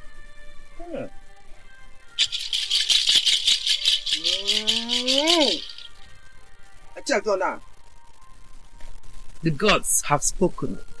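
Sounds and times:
rattle shaken rapidly: 2.2s - 6.0s.

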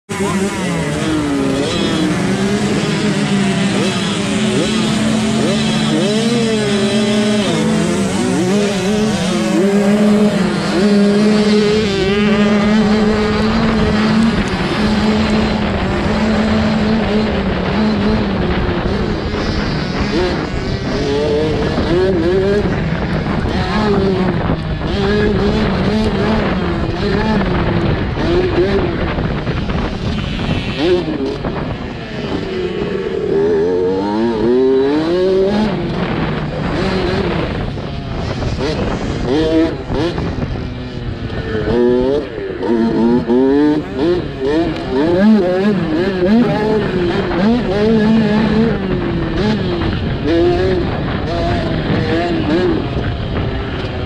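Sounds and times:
dirt bike engines revving: 0.1s - 54.0s.

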